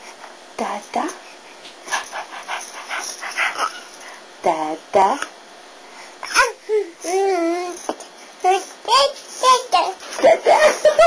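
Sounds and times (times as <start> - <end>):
baby saying da: 8.5 - 10.0.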